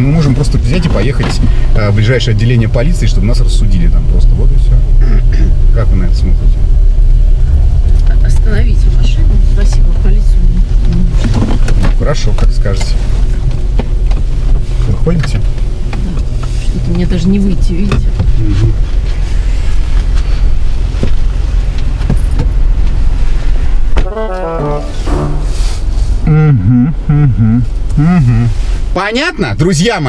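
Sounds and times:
car cabin rumble: 0.0 - 30.0.

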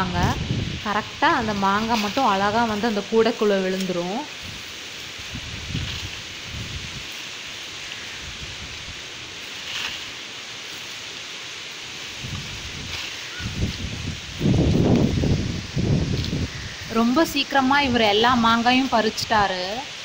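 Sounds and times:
leaves and branches rustling: 0.0 - 20.0
steady outdoor hiss: 0.0 - 20.0.

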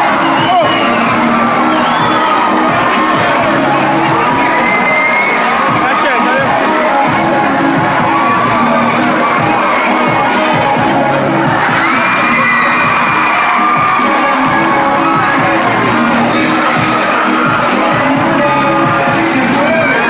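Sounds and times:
crowd cheering and screaming: 0.0 - 20.0
music with repeating beat: 0.0 - 20.0.

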